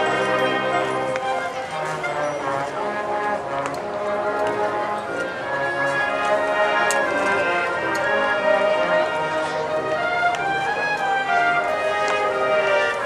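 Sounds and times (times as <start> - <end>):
concert band playing chords: 0.0 - 13.0.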